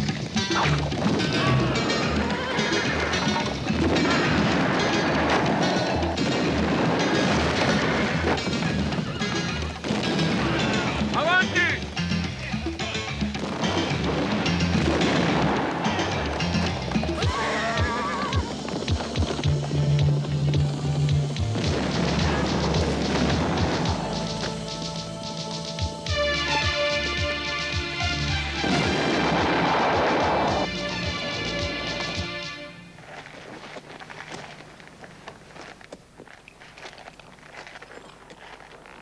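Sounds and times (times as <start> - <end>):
action music: 0.0 - 33.0
horses galloping: 0.0 - 39.0
horse neighing: 0.6 - 6.6, 7.3 - 9.8, 15.8 - 18.8
explosions: 0.6 - 11.6, 13.2 - 17.4, 21.3 - 24.6, 28.6 - 32.1
men shouting: 17.2 - 18.6.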